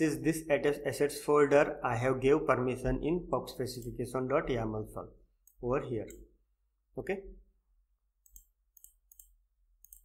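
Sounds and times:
computer mouse clicks: 8.2s - 10.0s.

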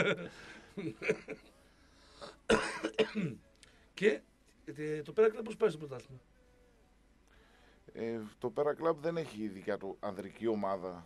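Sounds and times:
person coughing: 2.2s - 3.4s.

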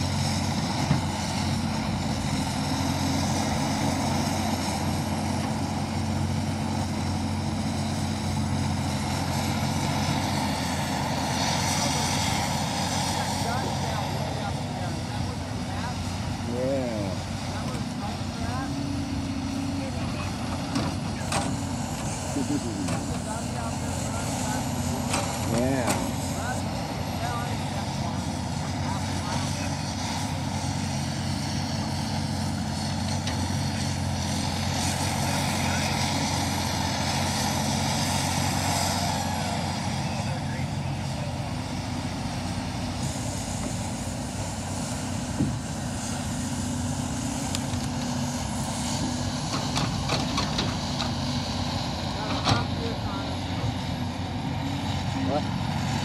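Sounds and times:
log loader running: 0.0s - 56.0s.

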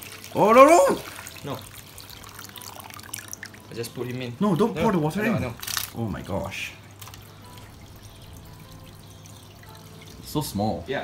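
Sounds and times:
low steady hum: 0.0s - 11.0s
water trickling into tank: 0.0s - 11.0s.

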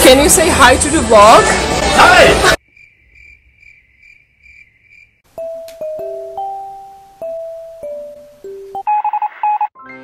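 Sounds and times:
cricket chirping: 2.6s - 5.2s.

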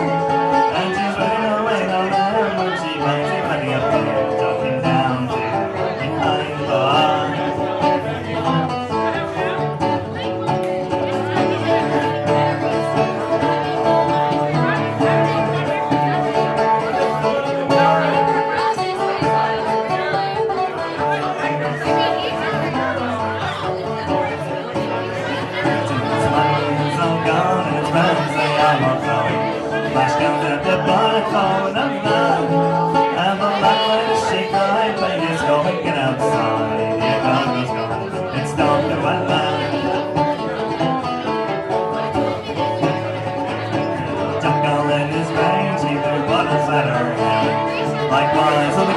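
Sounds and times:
plucked string instrument melody: 0.0s - 48.9s
pub chatter: 0.0s - 48.9s.

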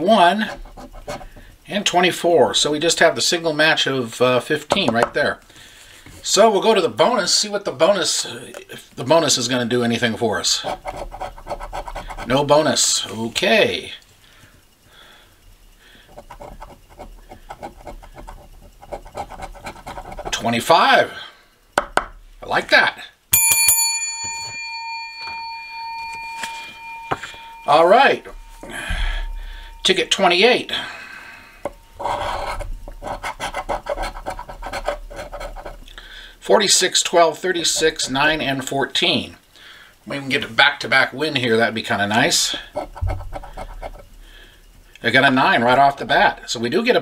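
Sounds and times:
coin scraping lottery ticket: 10.4s - 12.4s, 16.1s - 20.7s, 32.0s - 35.8s.

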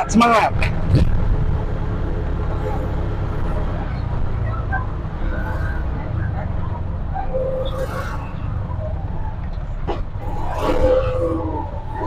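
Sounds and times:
auto-rickshaw engine running: 0.0s - 12.0s.

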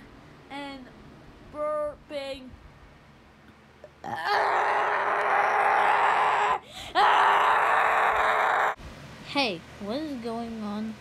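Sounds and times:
person's loud vocal outbursts: 4.0s - 8.8s.

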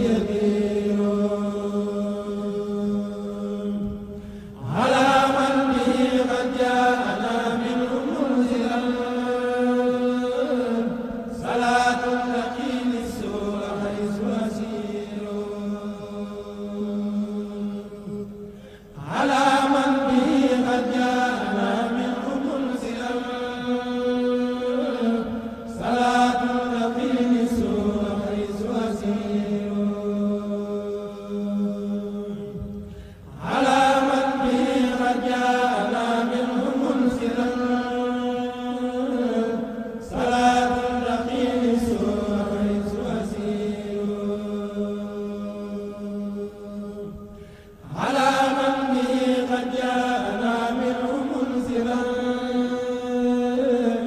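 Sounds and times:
male voices chanting a cappella: 0.0s - 54.0s.

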